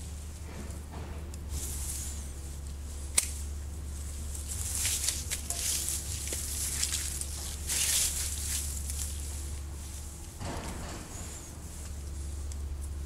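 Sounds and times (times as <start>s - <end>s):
steady low hum: 0.0s - 13.0s
leafy twigs rustling: 1.4s - 10.4s
secateurs snipping twig: 2.6s - 3.5s, 4.4s - 9.2s.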